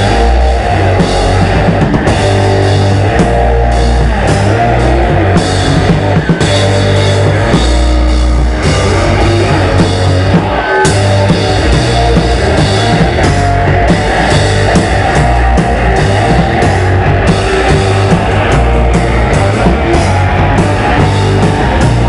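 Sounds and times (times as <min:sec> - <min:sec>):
bass guitar: 0:00.0 - 0:22.0
drum kit: 0:00.0 - 0:22.0
electric lead guitar: 0:00.0 - 0:22.0.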